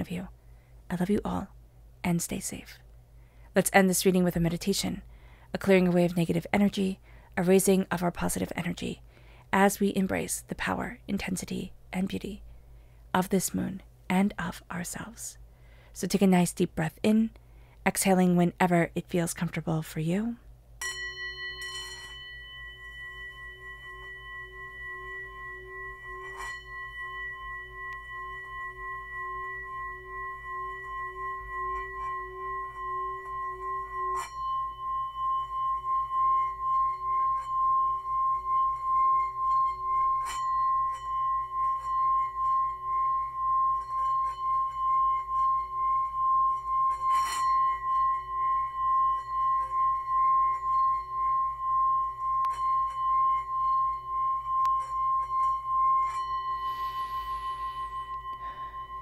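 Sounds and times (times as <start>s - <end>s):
singing bowl ringing tone: 0.0s - 1.5s, 20.8s - 59.0s.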